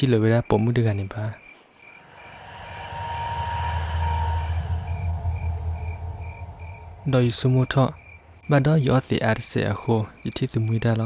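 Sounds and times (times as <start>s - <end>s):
crickets chirping: 0.0s - 11.0s
low rumble: 2.0s - 8.8s.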